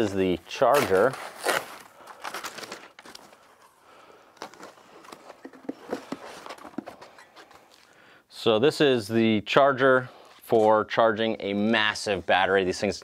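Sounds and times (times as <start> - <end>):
packing wrap crinkling: 0.5 - 8.0.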